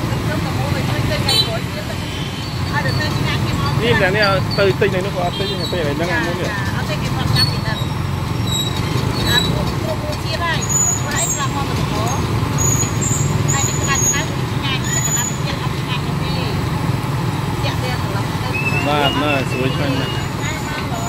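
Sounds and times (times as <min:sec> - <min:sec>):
low traffic rumble: 0:00.0 - 0:21.0.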